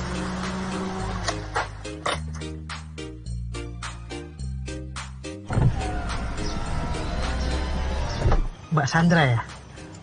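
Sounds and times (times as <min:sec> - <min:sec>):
film score music: 0:00.0 - 0:10.0.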